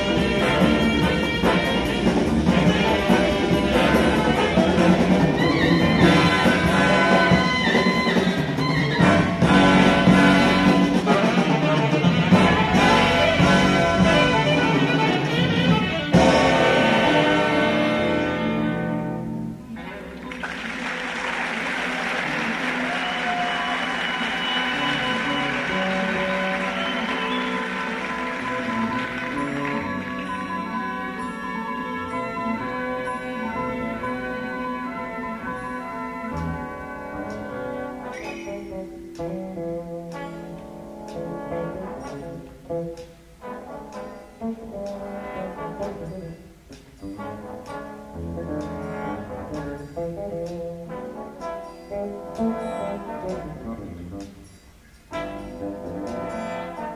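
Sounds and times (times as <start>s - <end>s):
loud brass passage: 0.0s - 39.0s, 39.6s - 56.9s
big band music: 0.0s - 56.9s.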